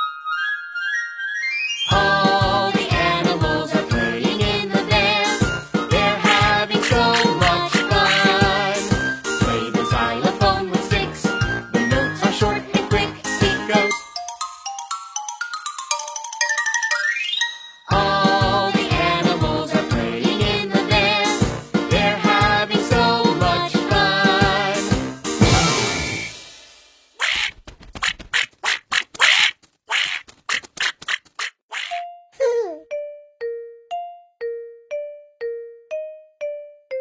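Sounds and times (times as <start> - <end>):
cartoon duckling quacking: 6.2 - 8.6, 27.2 - 32.0
xylophone quick notes: 13.7 - 17.8.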